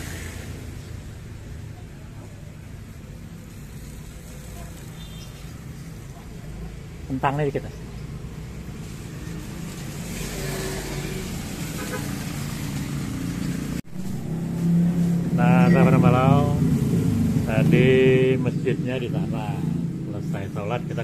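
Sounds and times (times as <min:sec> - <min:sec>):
cars and motorbikes passing: 0:00.0 - 0:21.0
low traffic hum: 0:00.0 - 0:21.0.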